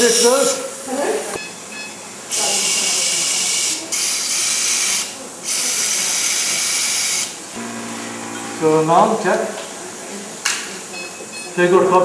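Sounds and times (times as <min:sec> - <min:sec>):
equipment hissing: 0:02.3 - 0:10.8
steady hum: 0:07.3 - 0:10.4.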